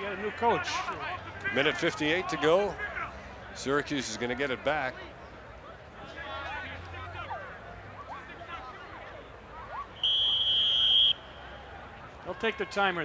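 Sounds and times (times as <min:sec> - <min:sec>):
distant shouts: 0:00.0 - 0:03.6, 0:05.7 - 0:13.0.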